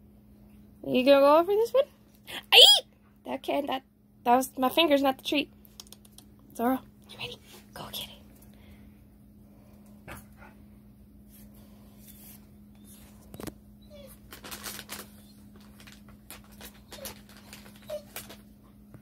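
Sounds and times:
steady low hum: 0.0 - 19.0.

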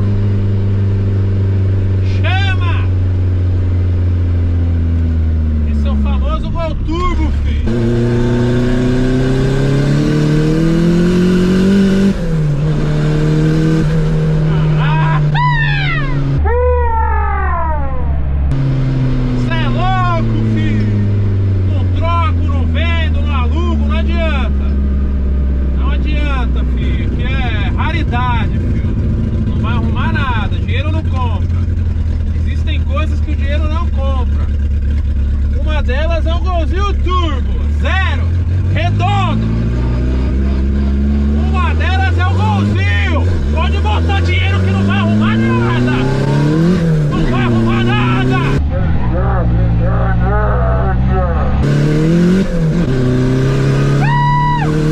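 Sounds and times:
car engine under hard driving: 0.0 - 54.9
man yelling: 14.5 - 18.1, 41.4 - 46.3, 47.2 - 51.6, 54.0 - 54.8.

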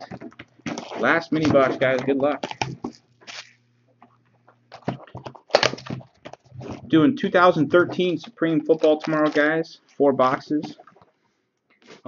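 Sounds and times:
plastic wrap crinkling: 0.0 - 11.2.

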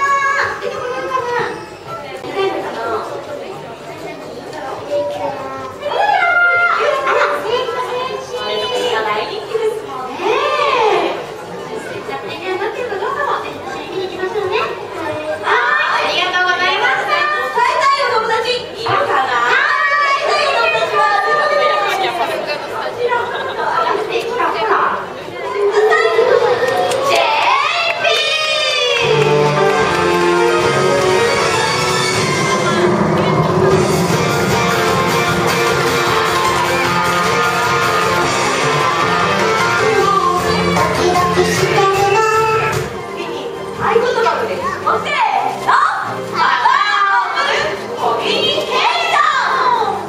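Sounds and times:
audience chatter: 0.0 - 50.0
high-pitched voices talking: 25.4 - 50.0.

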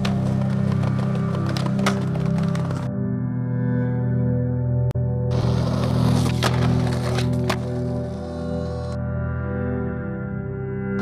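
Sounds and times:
skateboard clacks: 0.0 - 2.9, 5.4 - 8.0
skateboard wheels scraping and rolling: 0.0 - 3.0, 5.3 - 9.0
background music with held notes: 0.0 - 11.0.

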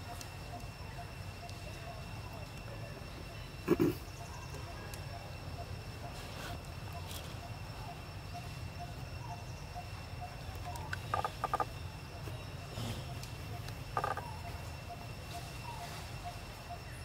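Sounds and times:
high insect drone: 0.0 - 17.0.

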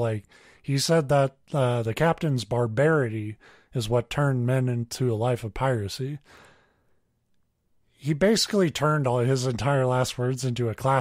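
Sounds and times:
man speaking: 0.0 - 6.3, 7.9 - 11.0.

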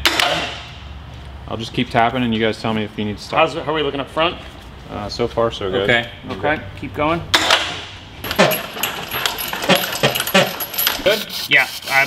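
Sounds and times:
metal chains clinking: 8.2 - 11.2.

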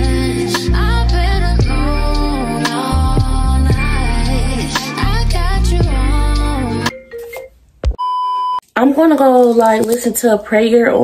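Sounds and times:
electronic beep: 6.9 - 8.6.

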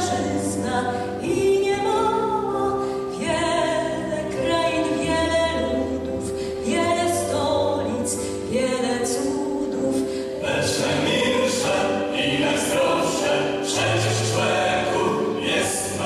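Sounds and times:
musical accompaniment: 0.0 - 16.0
choir singing: 9.7 - 16.0.

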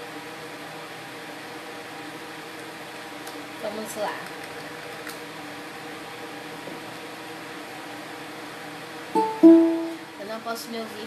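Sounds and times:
low room hum: 0.0 - 11.0
ukulele strums: 9.2 - 10.0.

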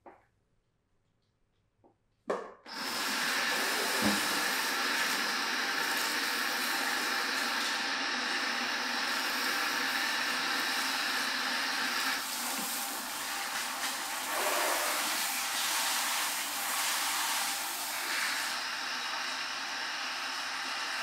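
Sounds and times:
shower sprayer water spray: 2.7 - 21.0.

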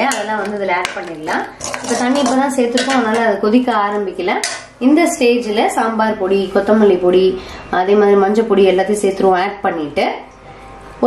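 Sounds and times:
spoon scraping metal pan: 0.0 - 3.3.

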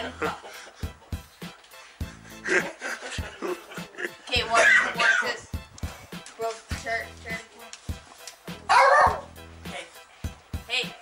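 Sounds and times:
background music: 0.0 - 11.0
large dog barking: 8.7 - 9.3.

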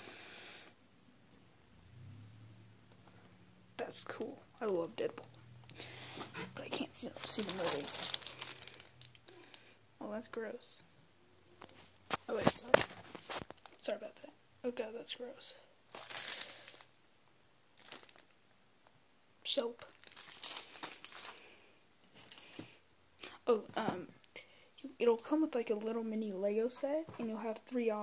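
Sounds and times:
packaging crinkling: 6.6 - 9.6, 15.9 - 16.9, 17.8 - 18.3, 19.9 - 21.5, 22.2 - 22.6.

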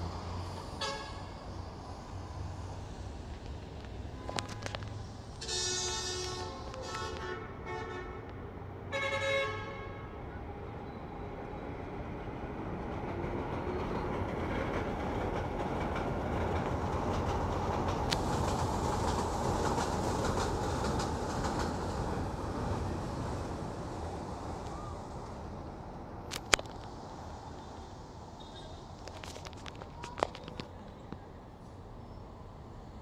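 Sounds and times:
metro train rumble passing: 0.0 - 30.1
train horn toot: 0.8 - 1.3, 5.4 - 8.2, 8.9 - 10.2.

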